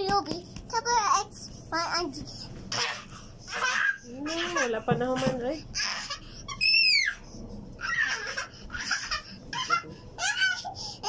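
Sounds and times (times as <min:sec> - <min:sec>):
toddler squealing and laughing: 0:05.8 - 0:07.2, 0:07.8 - 0:10.7.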